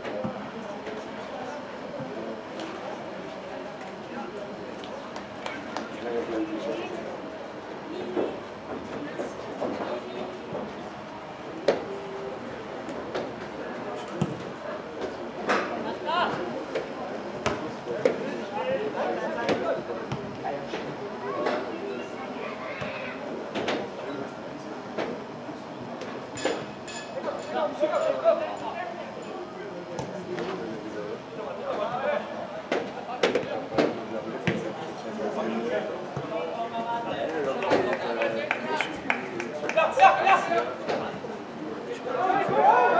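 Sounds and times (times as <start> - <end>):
indistinct voices in a hall: 0.0 - 42.9.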